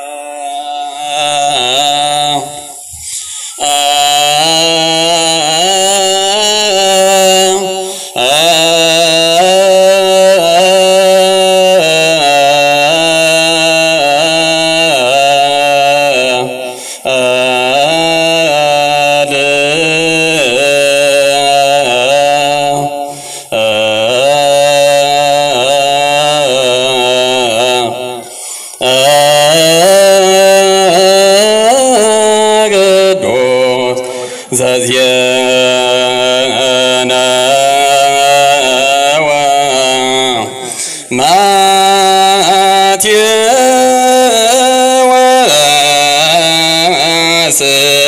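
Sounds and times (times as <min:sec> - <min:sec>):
man singing liturgical chant: 0:00.0 - 0:48.0.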